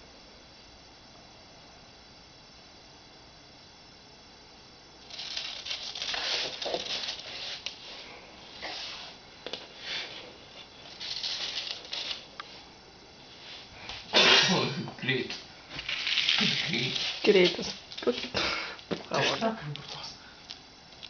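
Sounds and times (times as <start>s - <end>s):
rustling and scraping: 5.0s - 14.1s, 15.7s - 18.3s.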